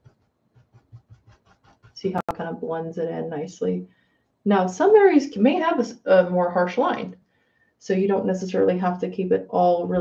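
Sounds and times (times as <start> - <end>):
paintbrush strokes on canvas: 0.0 - 2.2.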